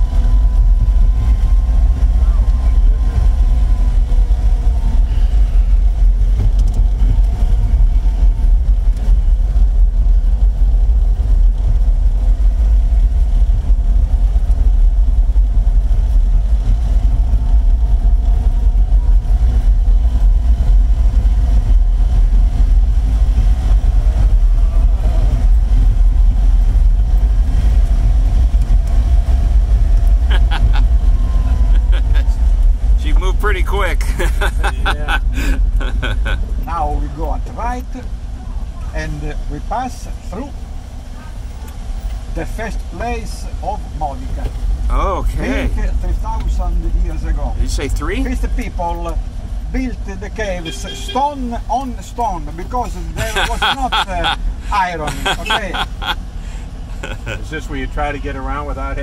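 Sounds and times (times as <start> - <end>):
car engine low rumble: 0.0 - 59.0.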